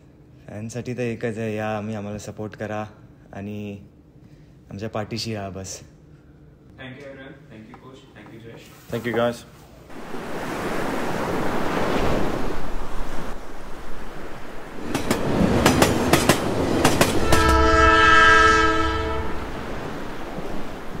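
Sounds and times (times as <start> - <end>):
train rumble: 14.2 - 21.0
train wheels clickety-clack: 14.9 - 17.9
train horn chord: 17.1 - 19.9.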